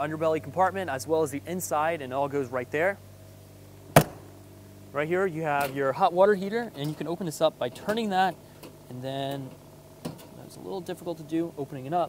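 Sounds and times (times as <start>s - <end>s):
storage compartment door slamming: 4.0s - 4.3s.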